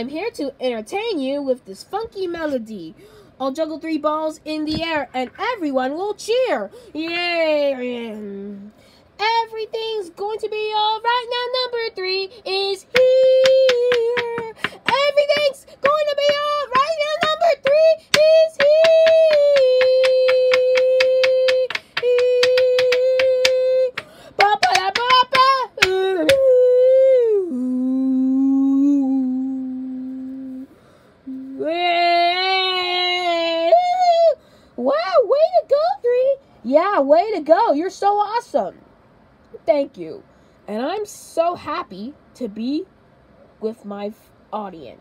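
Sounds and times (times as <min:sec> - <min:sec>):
high voice singing held notes: 0:12.5 - 0:33.7
fast clicking beat: 0:12.9 - 0:26.4.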